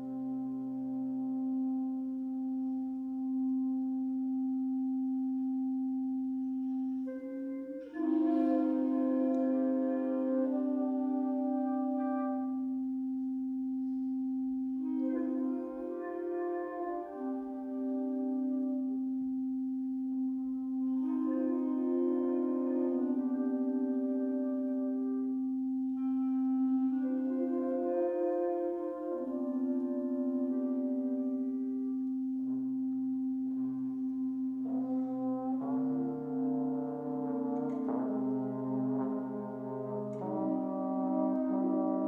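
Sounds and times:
wind band sustained chord: 0.0s - 42.0s.

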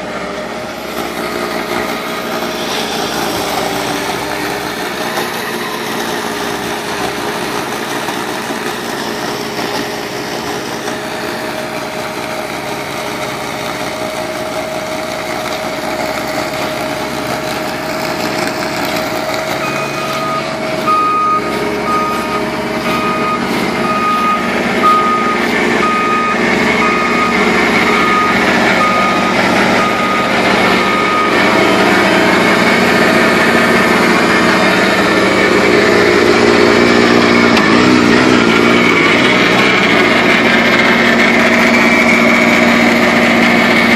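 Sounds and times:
track loader and snowblower running: 0.0s - 43.9s
backup alarm beeping: 19.5s - 32.2s.

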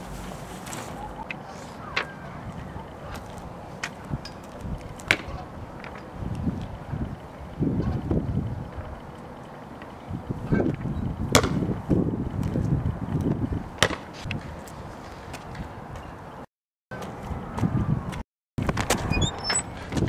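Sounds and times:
wind buffeting microphone: 1.0s - 16.2s, 17.2s - 20.0s.

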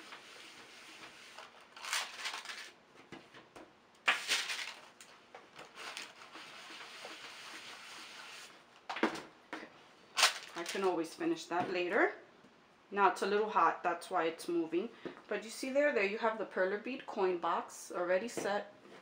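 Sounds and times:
iron scraping over paper: 0.0s - 2.7s, 5.7s - 8.6s.

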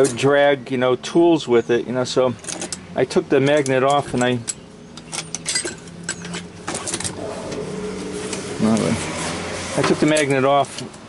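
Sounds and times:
hand tools clinking in bag: 3.5s - 7.3s
low voice: 8.6s - 9.0s.

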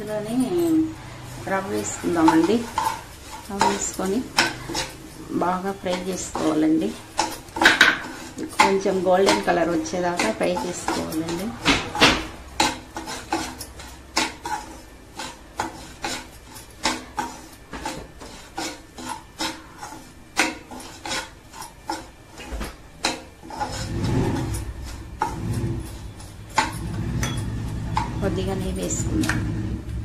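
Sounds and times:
woman speaking: 0.0s - 2.8s, 3.5s - 4.6s, 5.2s - 7.0s, 8.4s - 11.6s, 28.2s - 29.5s
spoon stirring in metal pan: 0.0s - 29.8s.

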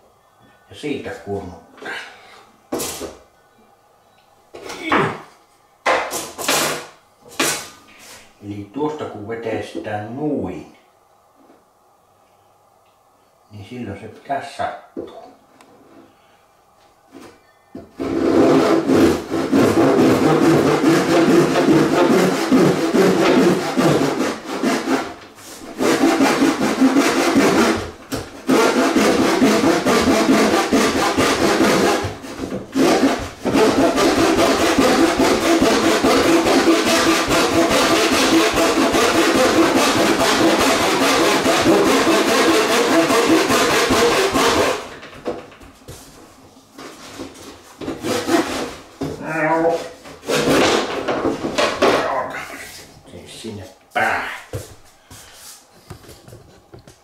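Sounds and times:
hand saw cutting wood: 6.1s - 7.7s, 18.0s - 45.0s, 47.8s - 48.8s, 50.2s - 52.0s.

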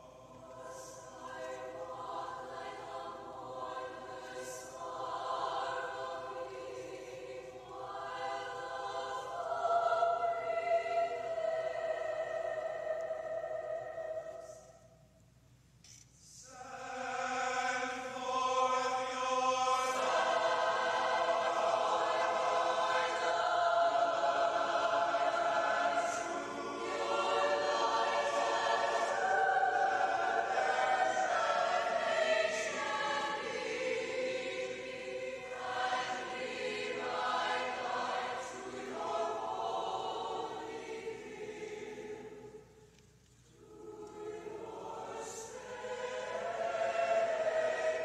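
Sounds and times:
mixed choir singing: 0.0s - 14.9s, 16.4s - 42.8s, 43.5s - 48.0s.

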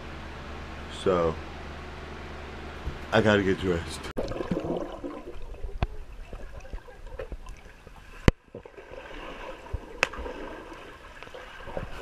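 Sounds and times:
underwater water wash: 4.2s - 12.0s
sharp underwater clicks: 9.7s - 11.9s.

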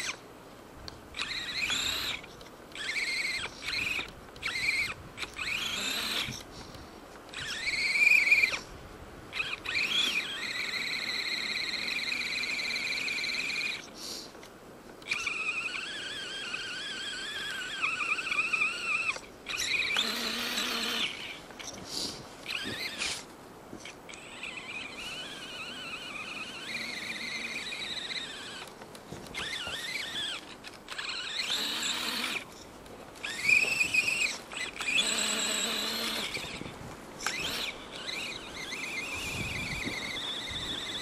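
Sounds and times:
toy truck motor whining: 0.0s - 0.2s, 1.1s - 6.5s, 7.3s - 8.7s, 9.3s - 14.4s, 15.0s - 41.0s.

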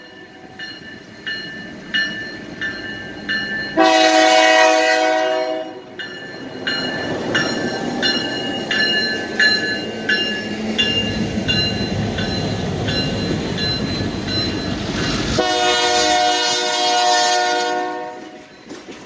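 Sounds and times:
crossing bell dinging: 0.0s - 19.0s
train rolling past: 0.0s - 19.0s
locomotive horn blast: 3.8s - 5.9s, 15.4s - 18.5s.

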